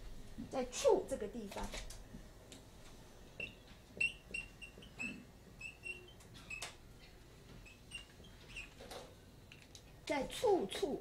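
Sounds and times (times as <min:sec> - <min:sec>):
marker squeaking on whiteboard: 0:03.4 - 0:06.7, 0:07.6 - 0:08.9.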